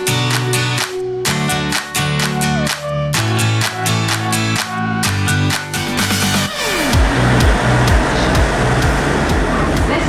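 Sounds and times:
music with falling swoop: 0.0s - 10.0s
electric train rumbling: 6.8s - 10.0s.

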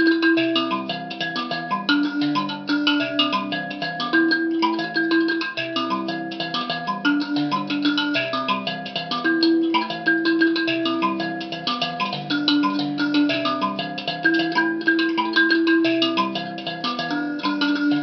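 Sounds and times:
mbira plucked: 0.0s - 18.0s.

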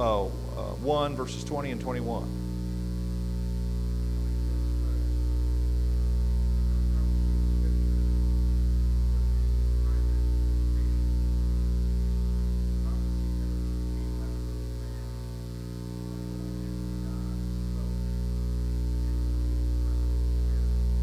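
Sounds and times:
electrical mains hum: 0.0s - 21.0s
faint distant voice: 4.1s - 21.0s.

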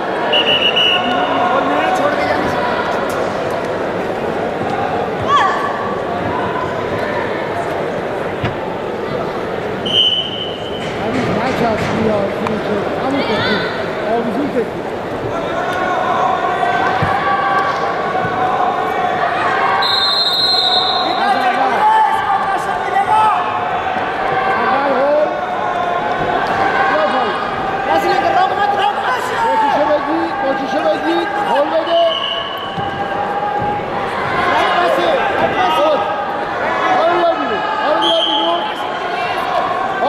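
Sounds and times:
arena crowd voices: 0.0s - 40.0s
referee whistle blast: 0.3s - 1.3s, 9.8s - 10.8s, 19.8s - 21.4s, 31.9s - 32.8s, 38.0s - 38.6s.

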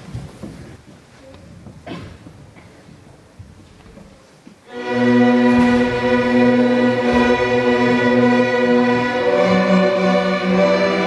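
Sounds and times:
string orchestra playing held chords: 4.7s - 11.0s.

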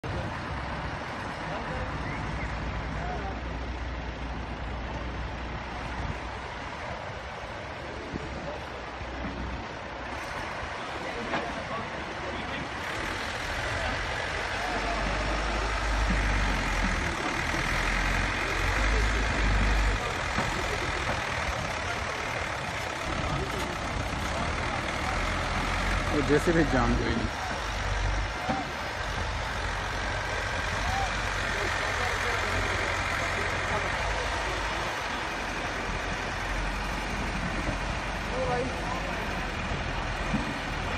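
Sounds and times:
backhoe diesel engine rumbling: 0.0s - 40.9s.

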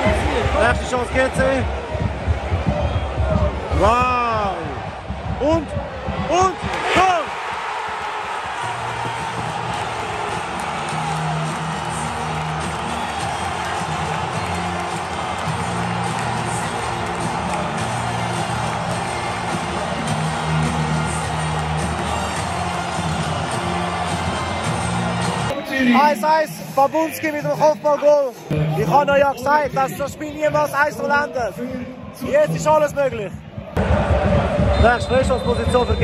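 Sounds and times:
stadium crowd cheering: 0.0s - 36.0s.

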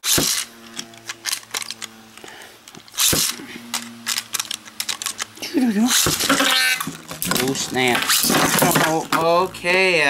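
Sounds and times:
ripcord launcher rip: 0.0s - 2.1s, 2.8s - 9.1s
sharp clicks of spinning tops: 0.0s - 8.3s
spinning tops whirring: 0.0s - 9.4s.

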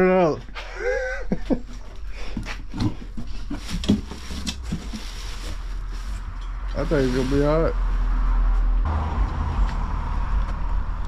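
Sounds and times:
cardboard and plastic rustling: 1.4s - 7.6s.

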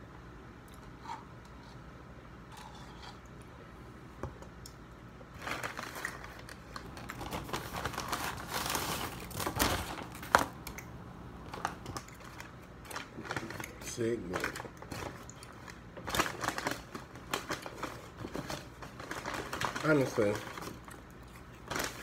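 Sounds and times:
paper bag rustling and crinkling: 5.3s - 10.6s, 11.5s - 21.0s, 21.6s - 22.0s.

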